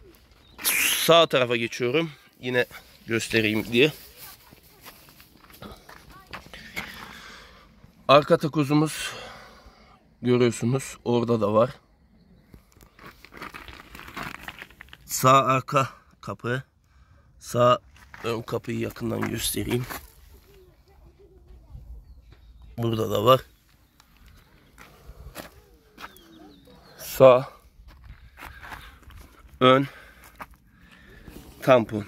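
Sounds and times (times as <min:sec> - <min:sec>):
footsteps on gravel: 0:02.5 - 0:07.4, 0:12.6 - 0:15.2, 0:17.8 - 0:32.0.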